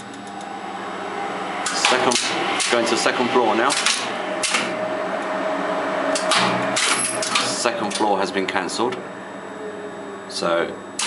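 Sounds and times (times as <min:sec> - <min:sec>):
lift controller hum: 0:00.0 - 0:11.0
relays clacking: 0:01.6 - 0:04.8, 0:06.1 - 0:08.2.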